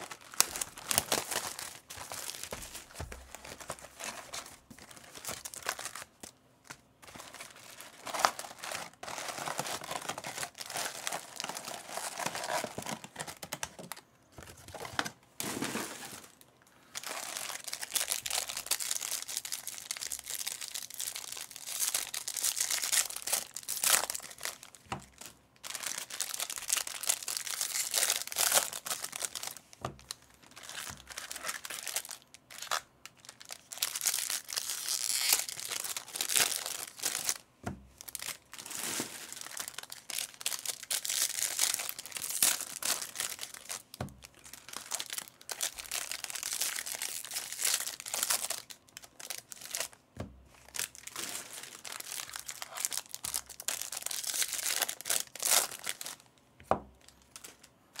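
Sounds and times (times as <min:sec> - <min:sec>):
foil wrappers crinkling and tearing: 0:00.0 - 0:37.4, 0:38.0 - 0:50.0, 0:50.6 - 0:56.3.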